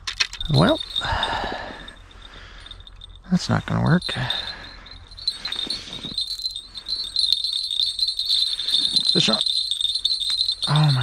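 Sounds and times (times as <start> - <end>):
small bells jingling: 0.2 - 11.0.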